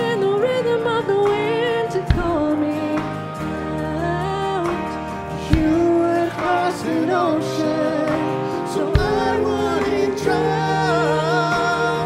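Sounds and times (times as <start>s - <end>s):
band accompaniment: 0.0s - 12.0s
electric guitar: 0.0s - 12.0s
woman singing: 0.0s - 12.0s.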